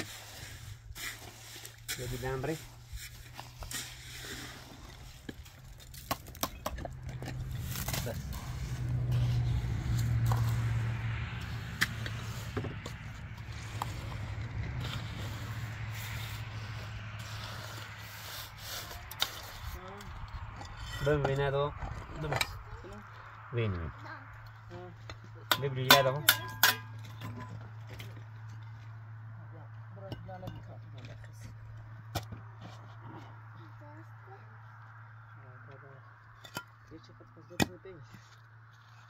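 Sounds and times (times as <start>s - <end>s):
wet cement scraped by hand: 0.0s - 6.1s, 7.1s - 20.0s
small scrapes and knocks: 0.0s - 22.6s, 30.2s - 33.5s, 37.6s - 39.0s.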